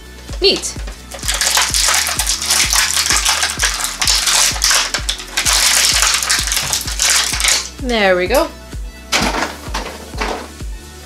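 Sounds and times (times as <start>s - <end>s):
plastic bag crinkling: 0.7s - 7.8s.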